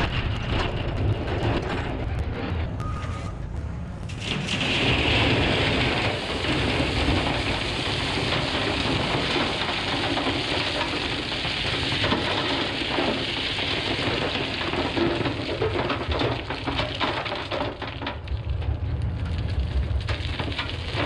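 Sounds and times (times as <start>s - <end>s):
crushed rock pouring into steel trailer: 4.2s - 21.0s.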